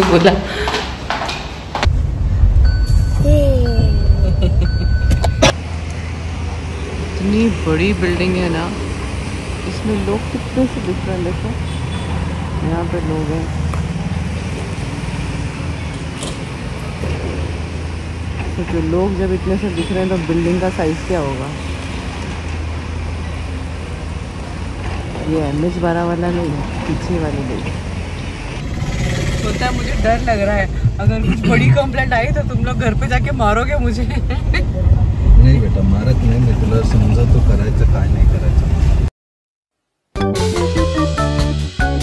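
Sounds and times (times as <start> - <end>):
road traffic: 0.0 - 39.1
car cabin rumble: 1.9 - 5.6.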